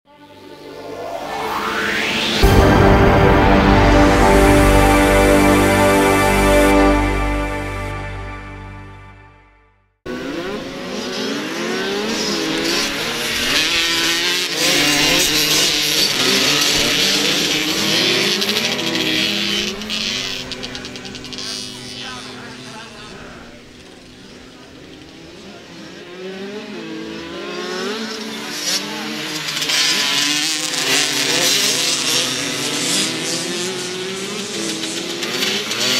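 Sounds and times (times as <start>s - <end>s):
motocross bikes revving and racing: 10.1s - 35.9s.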